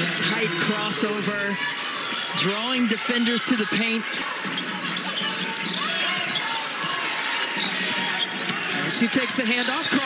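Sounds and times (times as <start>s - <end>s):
crowd murmur: 0.0s - 10.0s
sneakers squeaking: 0.0s - 10.0s.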